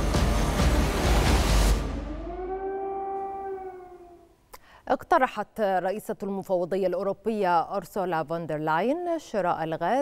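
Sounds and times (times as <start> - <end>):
drawn-out wailing tone: 1.8 - 4.3
breath: 4.5 - 4.9
woman speaking: 4.9 - 10.0.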